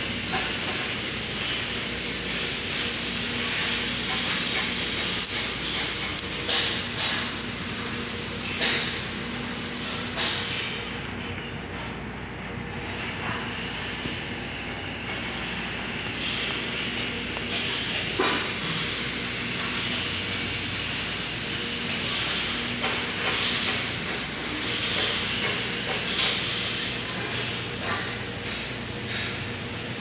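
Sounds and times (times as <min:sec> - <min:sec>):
arc welding sizzling: 0:00.0 - 0:30.0.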